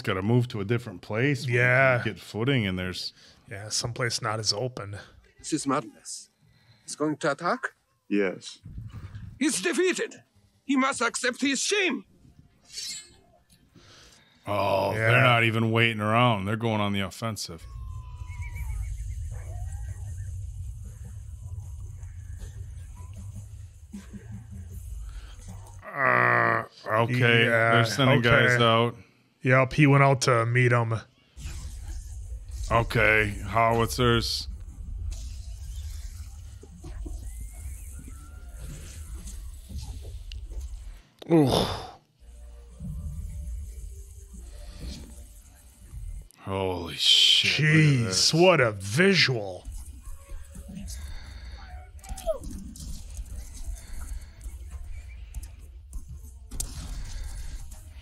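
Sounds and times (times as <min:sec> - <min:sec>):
continuous low rumble: 0:17.9 - 0:25.8.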